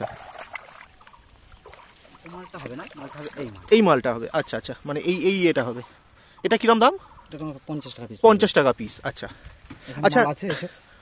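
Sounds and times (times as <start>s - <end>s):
feet wading through muddy water: 0.0s - 4.4s.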